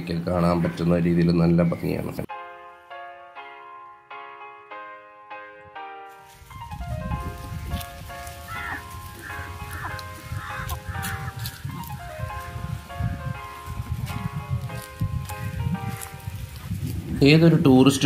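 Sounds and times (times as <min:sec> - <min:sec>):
background keyboard music: 0:00.0 - 0:18.0
chickens calling: 0:07.1 - 0:12.5.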